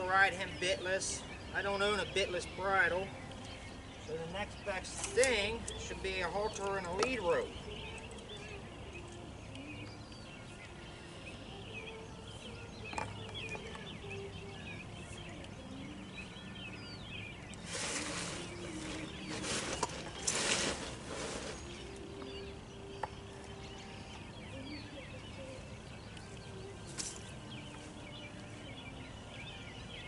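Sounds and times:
rustling noise: 17.6s - 22.0s.

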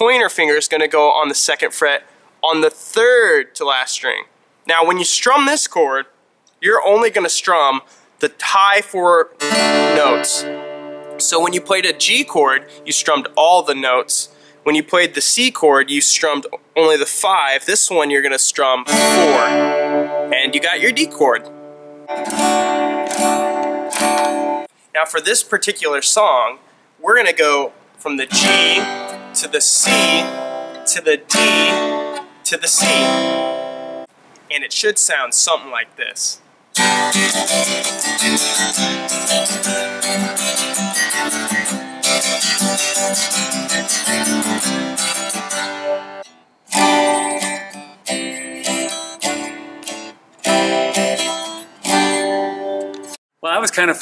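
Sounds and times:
acoustic guitar strums: 9.4s - 14.6s, 18.9s - 24.8s, 28.3s - 34.2s, 36.7s - 53.2s.

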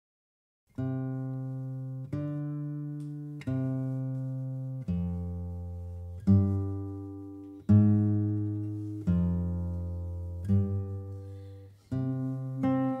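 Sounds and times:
acoustic guitar chords ringing: 0.8s - 13.0s.

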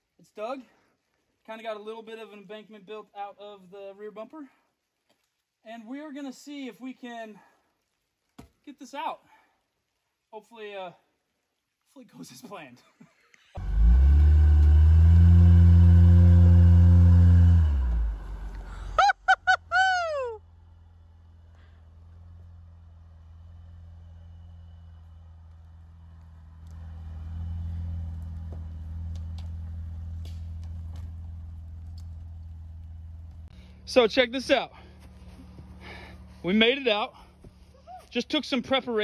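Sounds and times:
truck engine revving hard: 13.6s - 19.0s.

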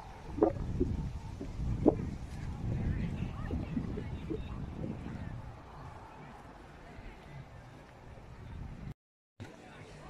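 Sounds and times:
wind on microphone: 0.0s - 8.9s.

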